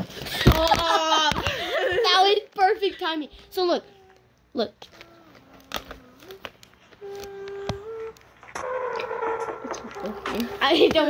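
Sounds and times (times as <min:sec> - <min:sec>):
person humming: 0:05.0 - 0:08.2.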